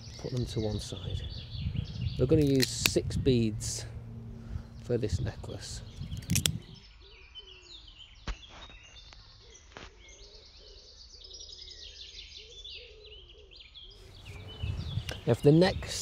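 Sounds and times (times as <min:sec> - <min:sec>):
birds chirping: 0:00.0 - 0:16.0.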